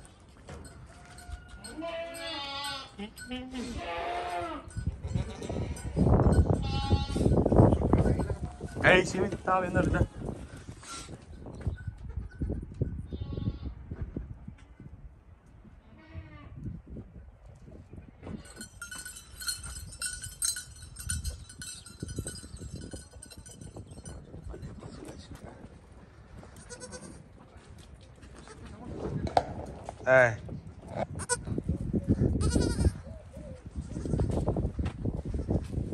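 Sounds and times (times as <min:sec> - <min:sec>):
goat kids bleating: 0:01.6 - 0:07.4, 0:13.1 - 0:13.7, 0:26.5 - 0:27.2, 0:31.2 - 0:31.6, 0:32.4 - 0:33.1, 0:33.8 - 0:34.4.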